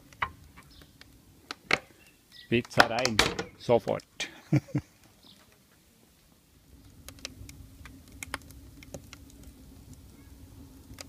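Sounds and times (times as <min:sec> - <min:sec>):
wood fire crackling: 0:00.0 - 0:11.0.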